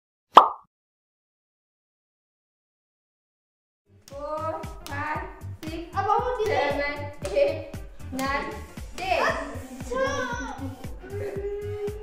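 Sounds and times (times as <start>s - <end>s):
short pop: 0.4s - 0.7s.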